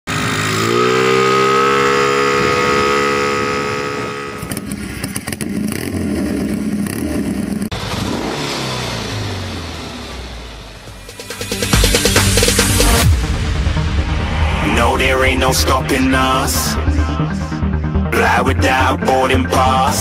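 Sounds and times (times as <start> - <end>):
motorcycle engine revving: 0.1 - 13.3.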